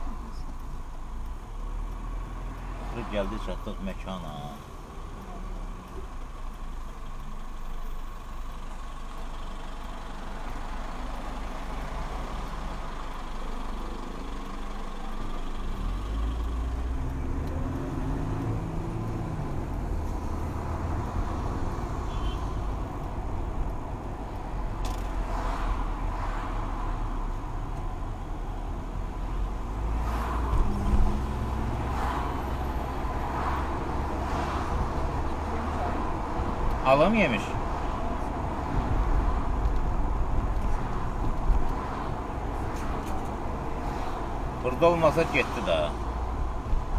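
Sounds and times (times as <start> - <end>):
car engine and road noise: 0.0 - 46.9.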